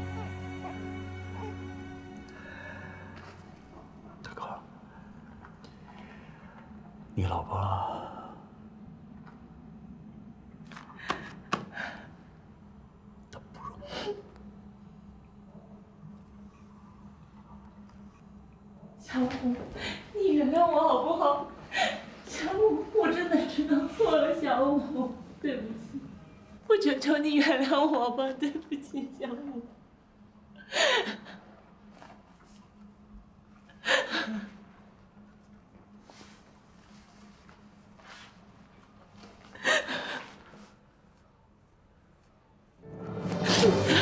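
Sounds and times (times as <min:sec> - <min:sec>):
low room hum: 0:00.0 - 0:44.0.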